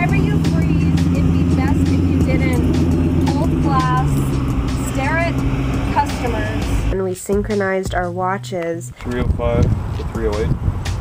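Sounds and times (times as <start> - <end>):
engine running with low rumble: 0.0 - 7.0, 9.1 - 11.0
woman talking: 0.0 - 9.0.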